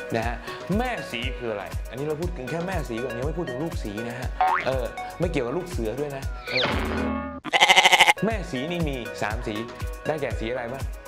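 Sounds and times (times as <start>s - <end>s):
background music: 0.0s - 11.0s
bleating call: 7.4s - 8.2s.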